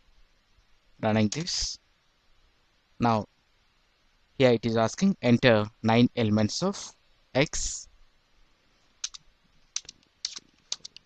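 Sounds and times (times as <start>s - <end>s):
computer keyboard keystrokes: 9.0s - 11.0s.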